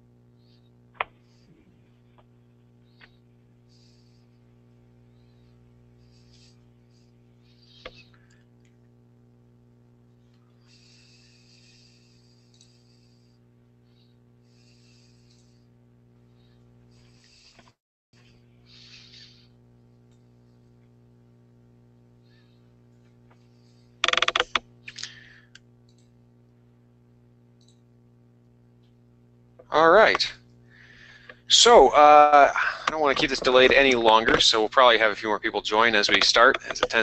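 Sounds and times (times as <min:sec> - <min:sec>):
faint electrical hum: 0:00.0 - 0:37.0
rapid clicking: 0:24.0 - 0:26.1, 0:32.6 - 0:37.0.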